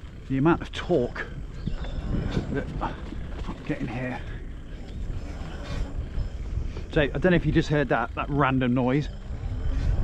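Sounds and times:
electric bike rumbling on dirt track: 0:00.0 - 0:10.0.

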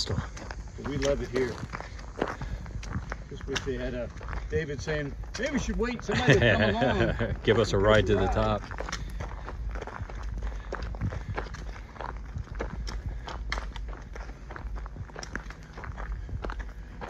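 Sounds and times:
footsteps on gravel: 0:00.0 - 0:17.0.

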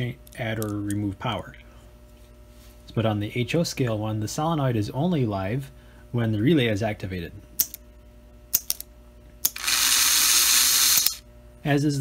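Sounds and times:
toy locomotive motor whirring: 0:09.4 - 0:11.2.

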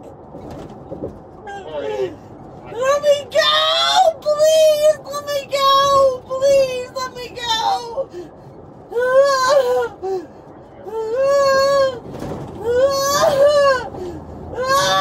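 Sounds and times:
woman wailing and sobbing: 0:12.6 - 0:14.0, 0:14.6 - 0:15.0.

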